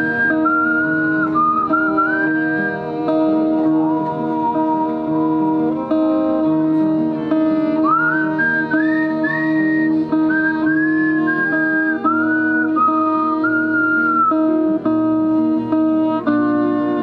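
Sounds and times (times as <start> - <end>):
acoustic guitar chords: 0.0 - 17.0
bowed violin melody: 0.0 - 17.0.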